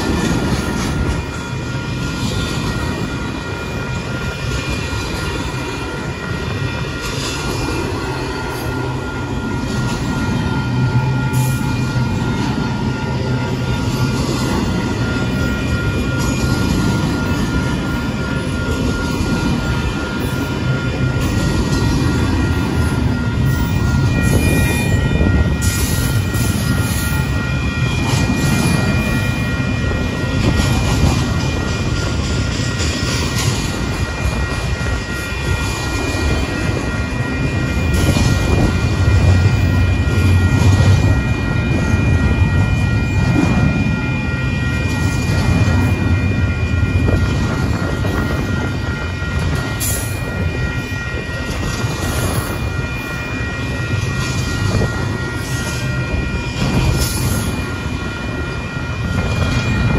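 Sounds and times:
freight train wheels rumbling: 0.0s - 59.9s
high-pitched ringing note: 0.0s - 59.9s
train clanks: 0.0s - 59.9s.

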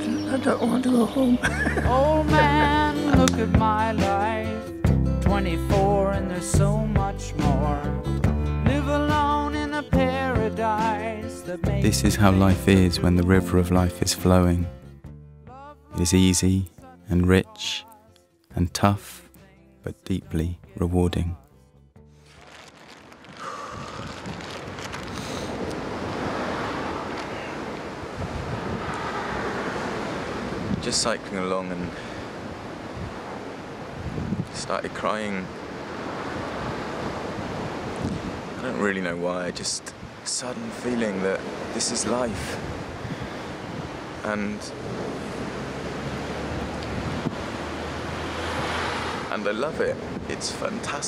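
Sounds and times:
man speaking: 11.8s - 14.7s, 16.0s - 17.9s, 18.5s - 21.4s, 44.2s - 44.8s
wind buffeting microphone: 23.4s - 31.2s, 31.9s - 34.7s, 35.5s - 38.6s, 39.9s - 40.3s, 41.1s - 51.0s.

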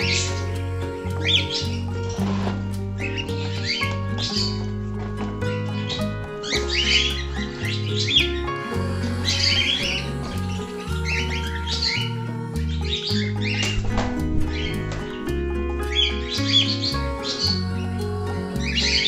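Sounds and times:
background music with held notes: 0.0s - 19.0s
high bird chirping: 0.0s - 19.0s.

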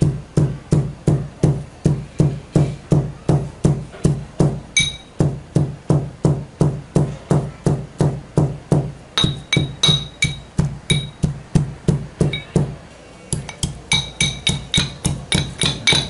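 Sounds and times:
pestle pounding in mortar: 0.0s - 12.8s, 13.4s - 16.0s.

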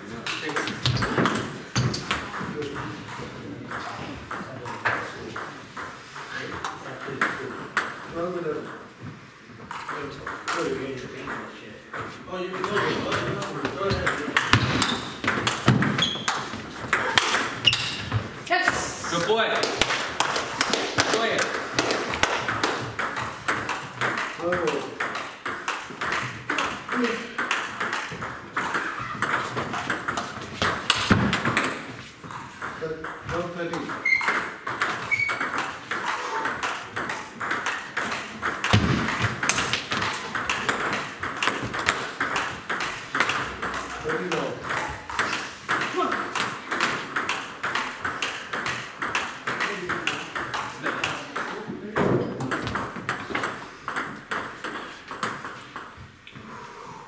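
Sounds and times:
table tennis balls clicking: 0.2s - 9.0s, 9.6s - 56.4s.

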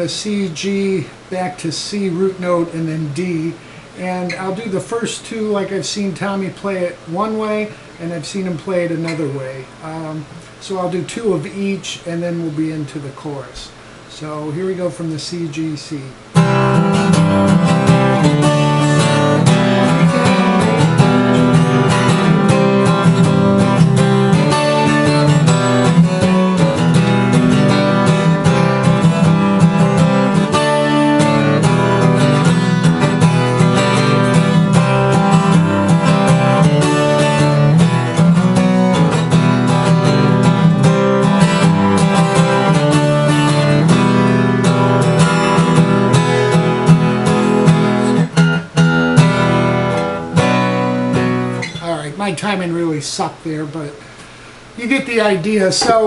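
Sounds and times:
acoustic guitar strumming chords: 0.0s - 52.5s, 55.7s - 56.0s.

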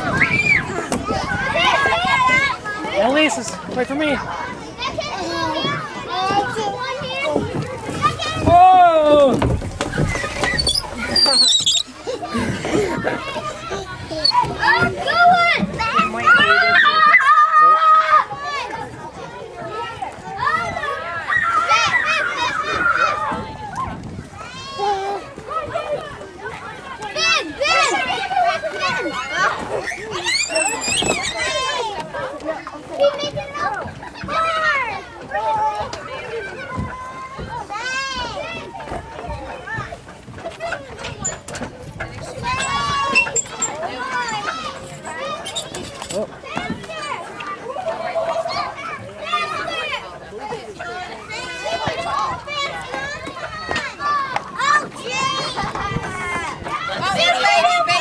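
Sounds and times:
young children calling and chattering: 0.0s - 58.0s
child babbling and calling out: 24.7s - 25.3s.

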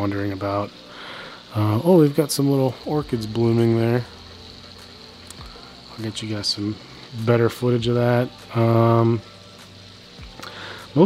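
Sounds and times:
high-pitched whine: 0.0s - 11.0s
low hum: 0.0s - 11.0s.

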